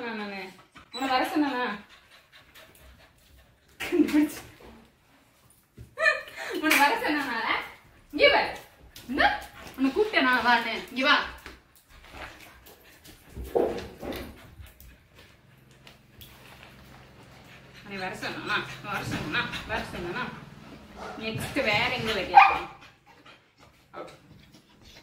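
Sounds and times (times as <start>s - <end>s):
dog panting: 0.3s - 3.9s, 7.1s - 25.0s.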